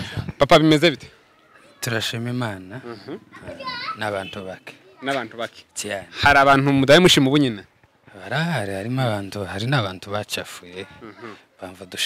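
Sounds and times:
man speaking into a microphone: 0:01.8 - 0:12.0.

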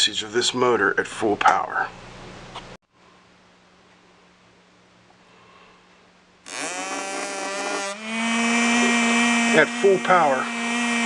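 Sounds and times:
small electric motor whine: 0:06.5 - 0:11.0.

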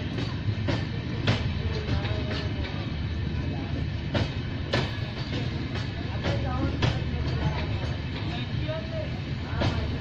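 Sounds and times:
train coaches rumbling past: 0:00.0 - 0:10.0
wheels clacking over rail joints: 0:03.7 - 0:08.7.

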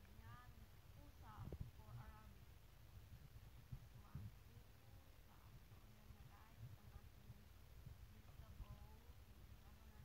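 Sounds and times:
faint low rumble: 0:00.0 - 0:10.0
steady low hum: 0:00.0 - 0:10.0.

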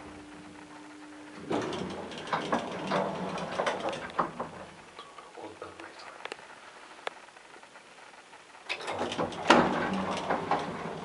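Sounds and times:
elevator hum: 0:00.0 - 0:06.7, 0:08.6 - 0:11.0.

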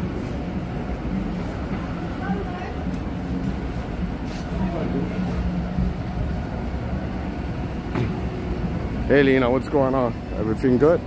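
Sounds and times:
city street traffic rumble: 0:00.0 - 0:11.0.

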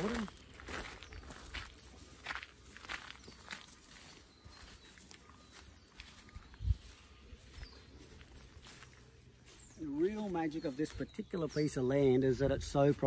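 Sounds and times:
footsteps on path and grass: 0:00.0 - 0:13.0.

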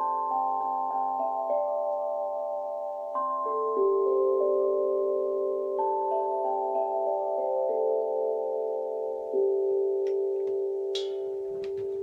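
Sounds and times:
steel tongue drum ringing: 0:00.0 - 0:12.0
mallet clicks: 0:10.0 - 0:11.9.

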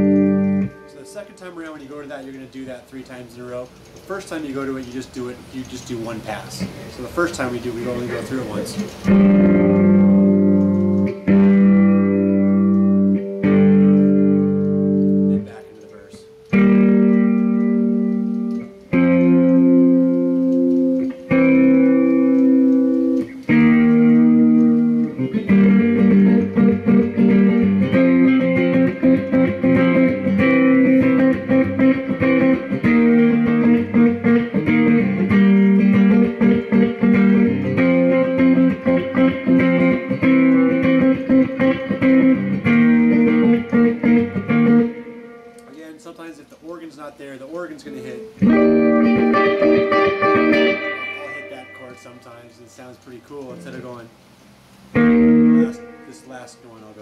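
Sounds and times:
electric guitar chords: 0:00.0 - 0:02.0, 0:08.0 - 0:45.7, 0:47.8 - 0:52.7, 0:53.4 - 0:56.5.

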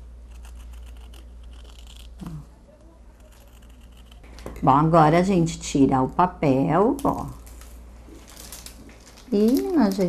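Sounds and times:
scissors snipping fabric: 0:03.1 - 0:04.2.

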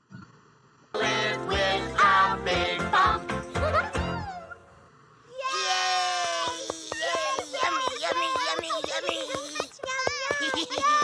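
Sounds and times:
voices cheering yay: 0:05.3 - 0:11.0
cartoon character crying out: 0:05.4 - 0:08.5.

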